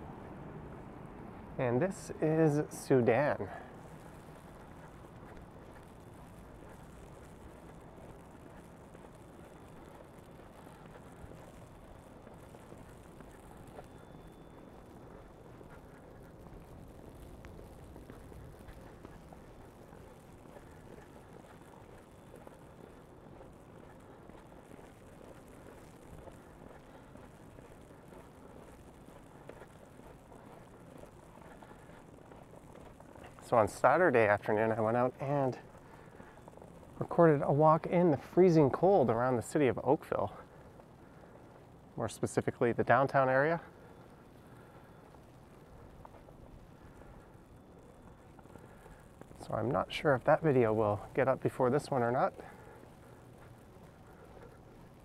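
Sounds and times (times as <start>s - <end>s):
low city hum: 0.0s - 55.0s
footsteps in fresh snow: 1.6s - 55.0s.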